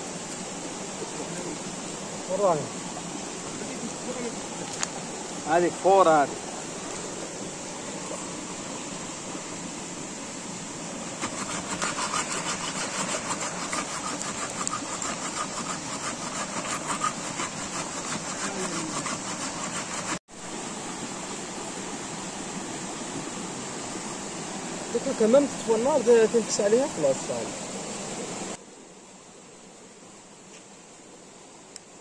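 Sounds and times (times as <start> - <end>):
stream rushing: 0.0 - 28.6
blade rasping across wooden log: 11.2 - 20.2.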